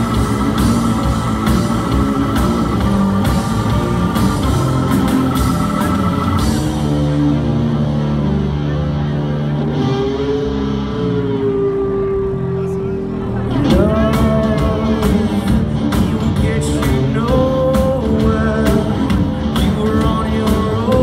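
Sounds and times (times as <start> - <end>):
rising sweep: 0.0 - 7.2
drums and cymbals: 0.0 - 7.5, 13.6 - 21.0
live rock band: 0.0 - 21.0.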